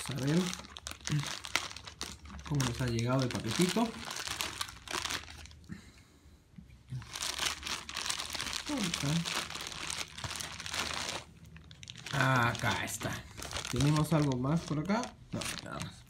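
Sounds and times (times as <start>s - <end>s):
plastic bag crinkling and tearing: 0.0s - 5.6s, 7.0s - 16.0s.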